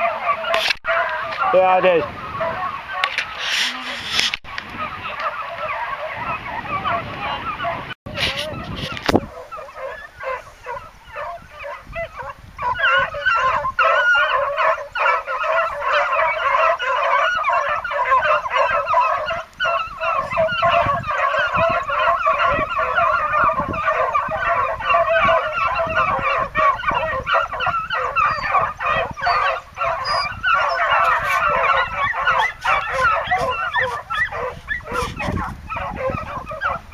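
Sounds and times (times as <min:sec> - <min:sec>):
hounds baying: 0:00.0 - 0:36.9.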